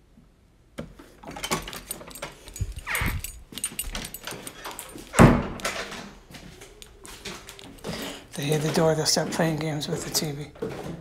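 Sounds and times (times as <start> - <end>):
door creak: 2.6 - 4.4
door shutting thud: 5.1 - 6.0.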